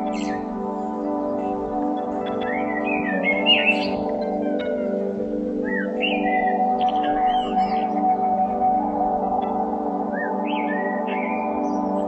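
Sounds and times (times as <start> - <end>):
bird chirps: 0.0 - 4.8, 5.6 - 8.8, 10.1 - 12.0
ambient drone of held tones: 0.0 - 12.0.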